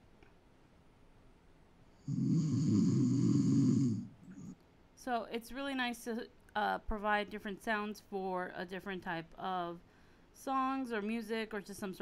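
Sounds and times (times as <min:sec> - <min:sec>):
person snoring: 0:02.0 - 0:04.6.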